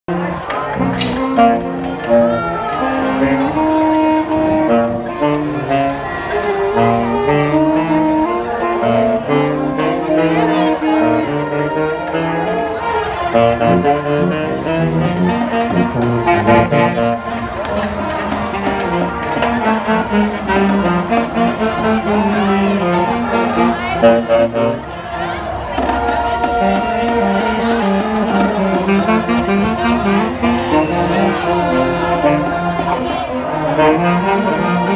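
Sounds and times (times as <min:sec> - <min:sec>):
marching band brass and saxophones: 0:00.1 - 0:34.9
voices talking: 0:08.2 - 0:34.9.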